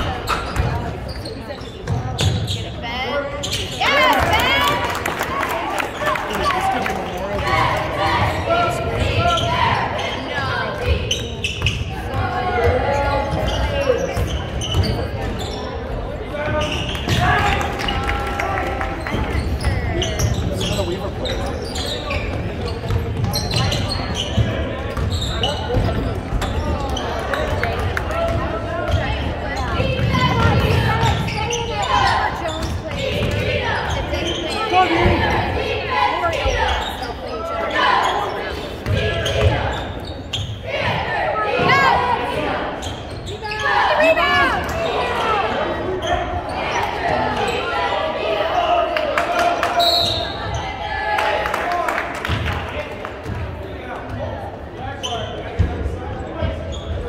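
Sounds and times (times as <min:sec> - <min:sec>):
voices echoing in gym: 0:00.0 - 0:57.0.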